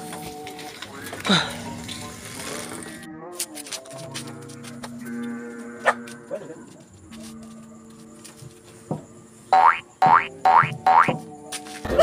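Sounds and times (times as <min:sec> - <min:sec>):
background music: 0:00.0 - 0:12.0
cartoon boing sound effects: 0:09.6 - 0:11.1.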